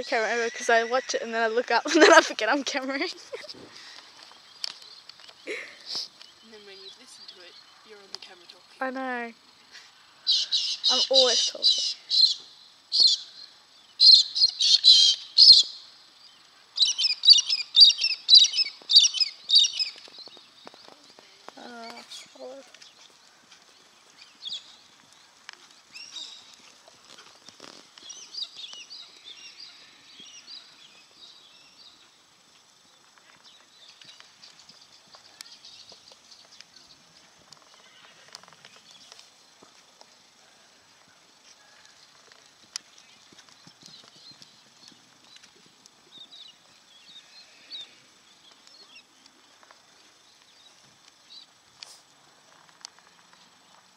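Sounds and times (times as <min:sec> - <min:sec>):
birds chirping: 0:00.0 - 0:39.6, 0:42.7 - 0:51.7
horse hoofbeats on sand: 0:42.6 - 0:46.3.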